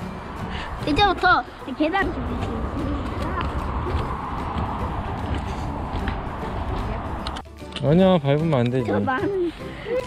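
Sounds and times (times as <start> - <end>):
wind rumble: 0.0 - 7.4
footsteps on wooden steps: 2.1 - 7.4.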